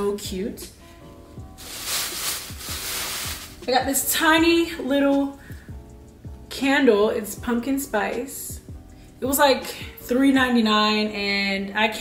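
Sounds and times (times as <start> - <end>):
background music with soft beat: 0.0 - 12.0
plastic bag rustling: 1.6 - 3.7.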